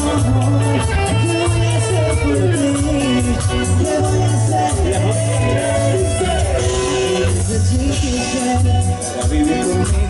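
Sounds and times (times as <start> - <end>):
dance band music: 0.0 - 10.0.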